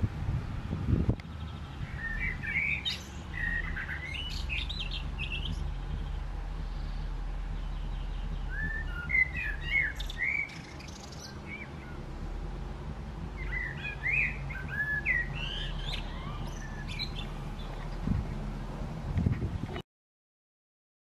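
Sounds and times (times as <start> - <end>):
steady low hum: 0.0 - 19.8
songbird chirping: 0.3 - 19.8.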